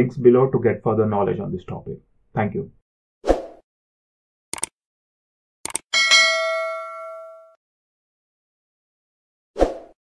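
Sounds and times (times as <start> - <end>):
bright notification bell chime: 6.0 - 7.6.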